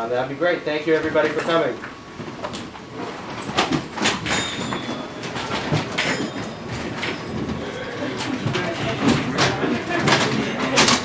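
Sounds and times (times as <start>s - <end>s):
chairs scraping on floor: 2.2s - 11.0s
murmur of people: 7.2s - 11.0s.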